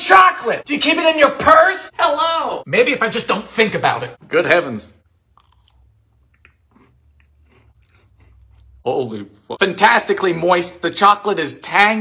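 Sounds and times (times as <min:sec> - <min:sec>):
person chewing: 0:05.2 - 0:09.5.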